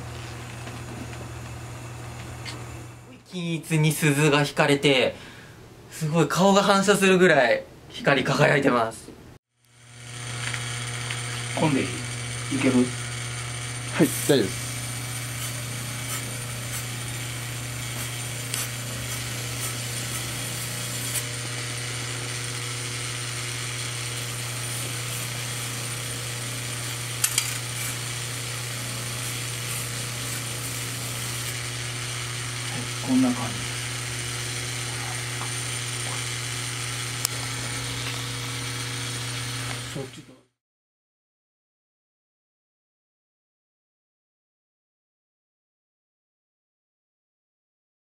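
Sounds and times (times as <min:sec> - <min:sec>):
electric motor hum: 0:00.0 - 0:03.2, 0:09.6 - 0:40.4
polishing wheel grinding hiss: 0:09.8 - 0:40.2.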